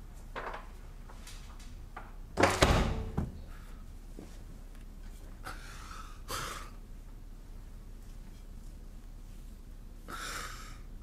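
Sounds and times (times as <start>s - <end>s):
man breathing heavily: 10.0s - 11.0s.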